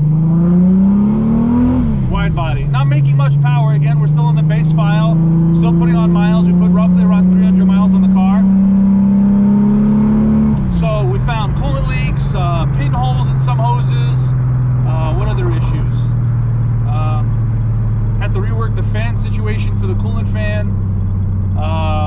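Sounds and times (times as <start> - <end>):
car engine droning from cabin: 0.0 - 22.0.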